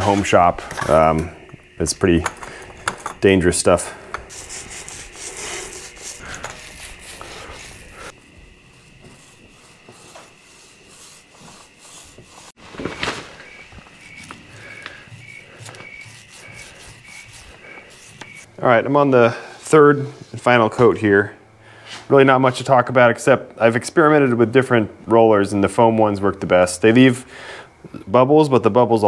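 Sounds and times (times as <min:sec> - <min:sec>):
paint roller rubbing on metal: 0:04.3 - 0:12.6, 0:13.4 - 0:18.5.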